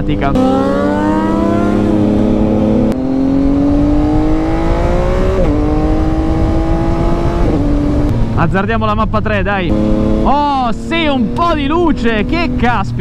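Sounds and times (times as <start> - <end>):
motorcycle engine revving: 0.0 - 8.5, 9.5 - 13.0
wind noise: 1.0 - 13.0.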